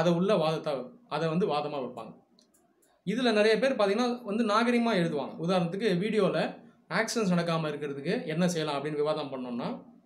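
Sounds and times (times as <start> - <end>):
man talking: 0.0 - 2.2, 3.1 - 9.9
faint clicks: 2.3 - 3.1.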